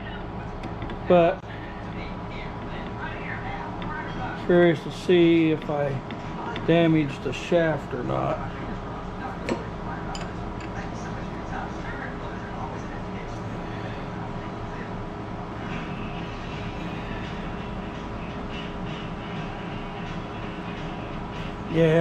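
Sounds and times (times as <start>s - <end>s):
fan whirring: 0.0s - 22.0s.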